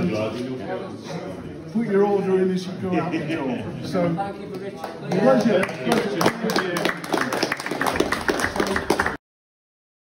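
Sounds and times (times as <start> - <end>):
people clapping: 4.5 - 9.2.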